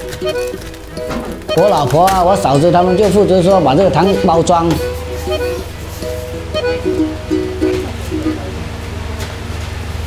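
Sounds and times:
plucked string melody: 0:00.0 - 0:08.8.

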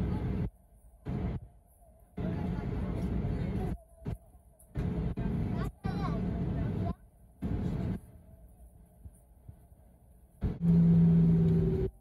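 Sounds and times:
muffled voices: 0:00.0 - 0:09.7.

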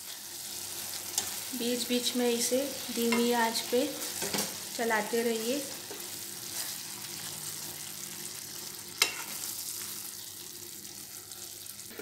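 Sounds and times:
syrup sizzling in a pan: 0:00.0 - 0:12.0
spatula stirring: 0:09.0 - 0:09.9.

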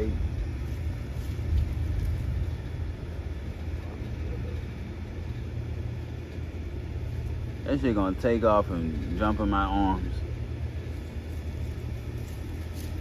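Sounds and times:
crackles of dry leaves: 0:00.0 - 0:13.0
low outdoor rumble: 0:00.0 - 0:13.0.

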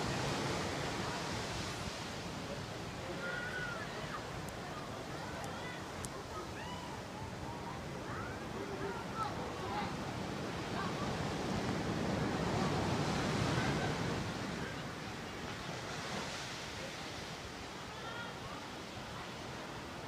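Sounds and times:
ocean surf washing in: 0:00.0 - 0:20.0.

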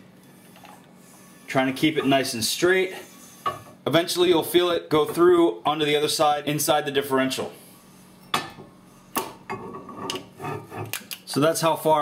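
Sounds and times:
metal scraping and rubbing: 0:09.6 - 0:11.0.

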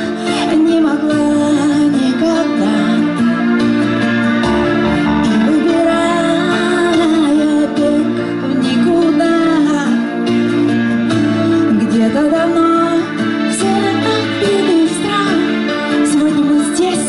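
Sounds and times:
pop band playing live: 0:04.5 - 0:06.9, 0:11.7 - 0:17.0.

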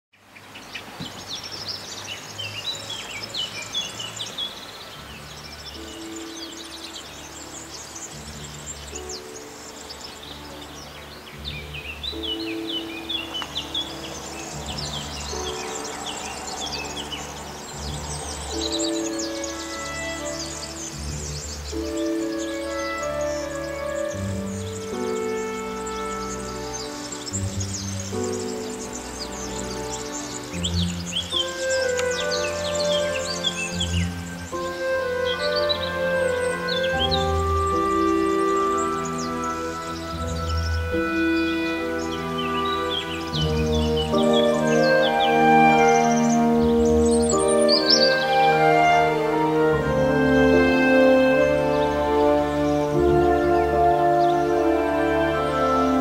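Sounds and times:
small birds chirping: 0:00.1 - 0:56.0
music of slow held notes: 0:00.8 - 0:56.0.

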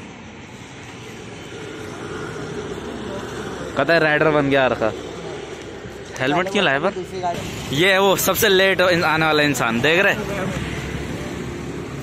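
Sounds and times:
passing street traffic: 0:00.0 - 0:12.0.

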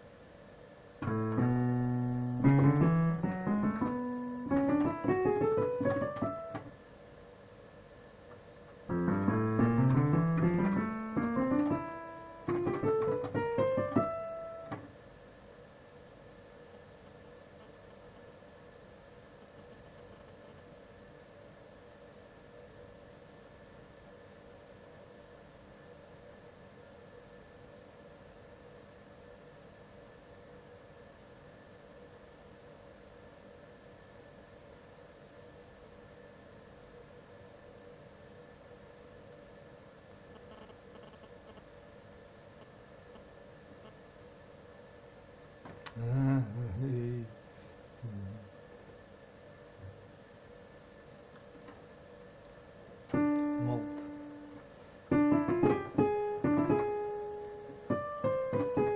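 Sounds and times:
faint hum and hiss: 0:00.0 - 0:58.9
digital piano rising runs: 0:01.0 - 0:06.7, 0:08.9 - 0:14.9, 0:53.1 - 0:58.9.

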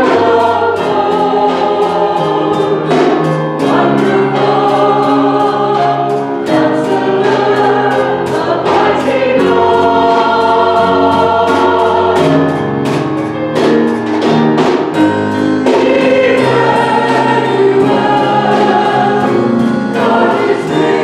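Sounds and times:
choir singing held chords: 0:00.0 - 0:21.0
steady beat: 0:00.0 - 0:21.0.

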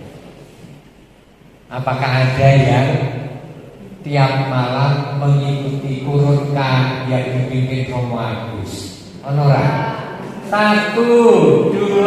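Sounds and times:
man speaking over microphone: 0:01.7 - 0:12.0.

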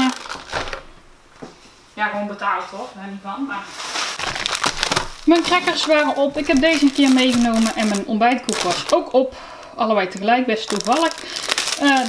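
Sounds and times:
packaging rustling: 0:00.0 - 0:01.0, 0:03.7 - 0:09.2, 0:10.1 - 0:12.0.

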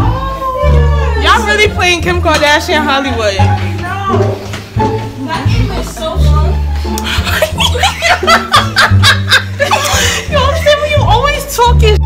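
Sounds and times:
background music with bass line: 0:00.0 - 0:12.0
woman laughing hard: 0:07.0 - 0:10.7.

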